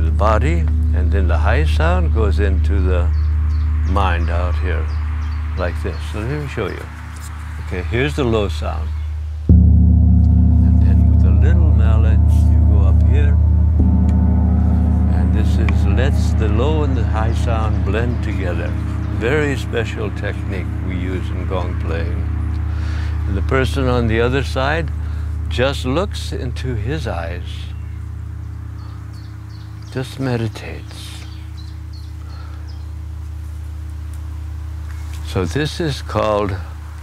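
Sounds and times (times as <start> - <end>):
gong ringing: 0.0 - 4.0, 9.5 - 32.2.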